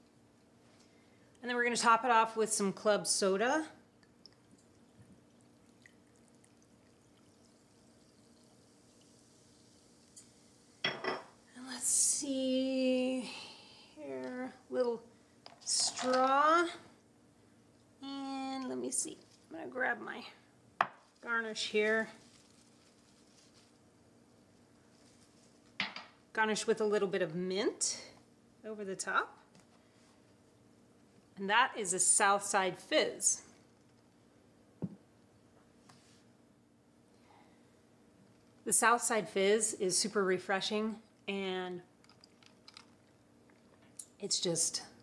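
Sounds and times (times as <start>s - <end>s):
faint steady hum: 0.0s - 45.0s
soda fizzing: 4.1s - 10.8s.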